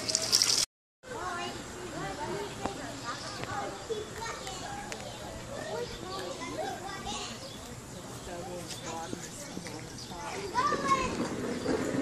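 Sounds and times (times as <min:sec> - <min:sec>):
children talking and playing: 0:01.0 - 0:12.0.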